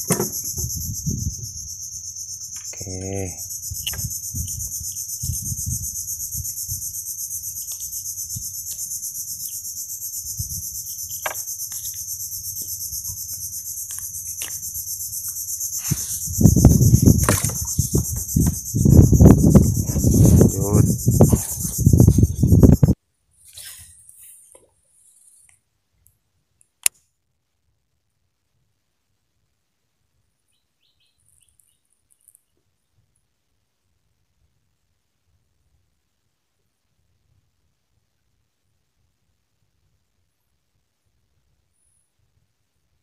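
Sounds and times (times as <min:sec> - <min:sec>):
high-pitched insect chorus: 0:00.0 - 0:23.0.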